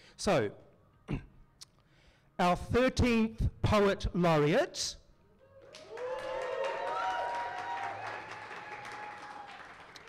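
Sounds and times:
voices cheering: 0:05.5 - 0:10.0
audience applauding: 0:05.7 - 0:10.0.

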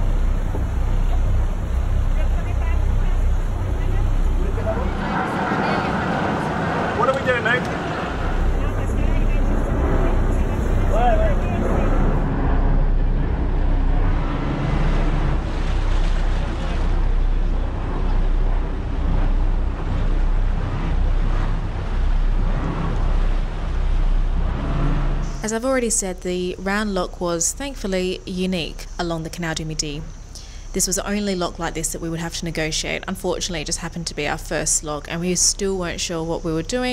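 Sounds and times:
boat engine idling: 0:00.0 - 0:36.9.

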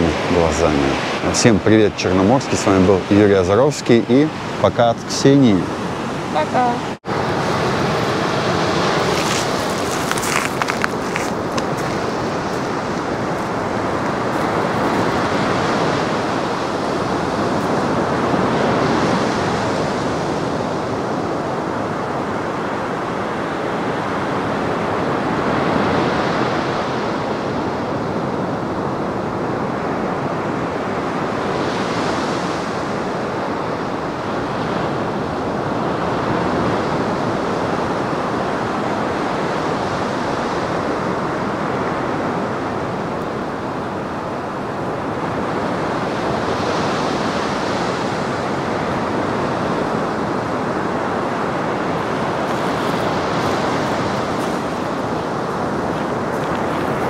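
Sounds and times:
waves breaking on shore: 0:00.0 - 0:57.0.

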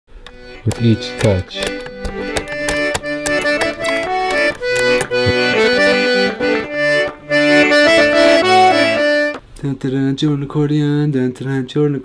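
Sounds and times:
piano accordion playing a tune: 0:00.1 - 0:09.4.

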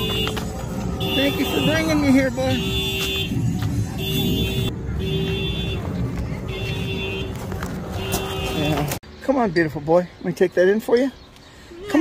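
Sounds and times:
vehicle horn blasts: 0:00.0 - 0:00.4, 0:01.0 - 0:03.4, 0:04.0 - 0:08.9.

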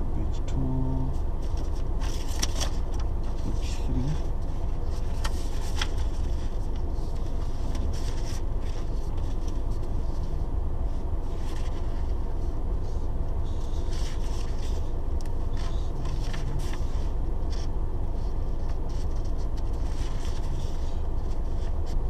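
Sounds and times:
car engine idling: 0:00.0 - 0:22.0
paper rustling: 0:01.4 - 0:10.4, 0:11.2 - 0:22.0.

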